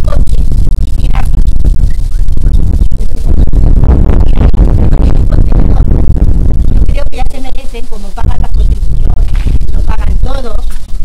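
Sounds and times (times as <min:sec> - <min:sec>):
woman's distorted voice: 0:00.0 - 0:01.8, 0:02.9 - 0:10.9
dense low rumble: 0:00.0 - 0:11.0.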